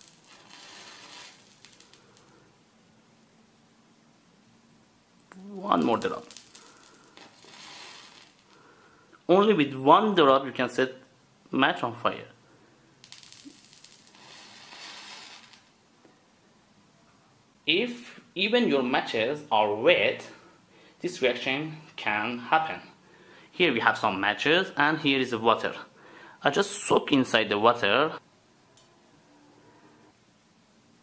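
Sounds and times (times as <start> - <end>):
match head flaring with soft hiss: 0.0 - 2.4, 5.8 - 8.6, 13.0 - 15.8.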